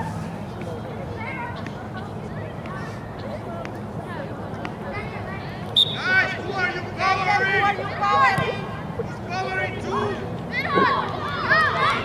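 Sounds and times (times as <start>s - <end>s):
low background hum: 0.0s - 12.0s
children shouting: 9.2s - 12.0s.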